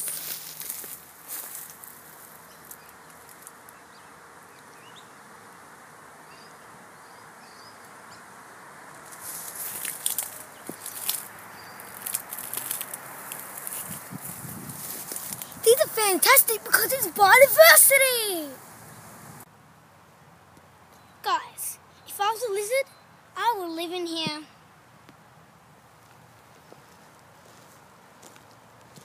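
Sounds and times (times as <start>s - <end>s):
crackling and rustling: 0.0s - 3.9s, 8.9s - 17.4s
faint bird chirps: 20.9s - 23.2s.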